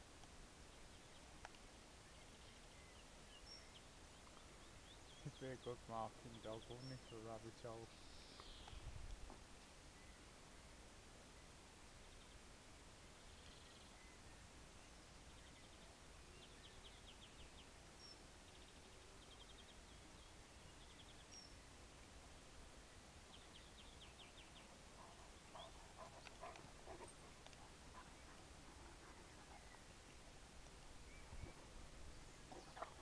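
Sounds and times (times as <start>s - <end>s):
faint rustles and knocks: 8.4s - 9.7s, 25.0s - 33.0s
distant bird trills: 24.6s - 29.9s, 31.0s - 33.0s.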